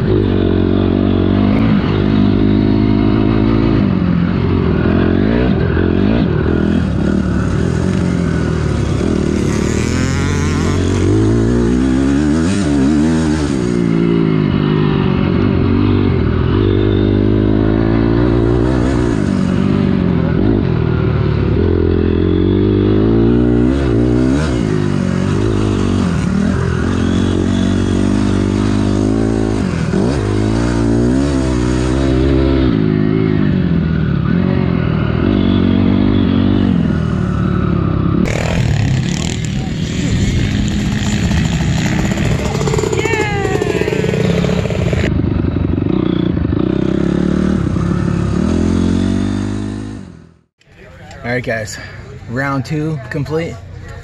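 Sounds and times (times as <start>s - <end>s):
dirt bike engine revving: 0.0s - 50.5s.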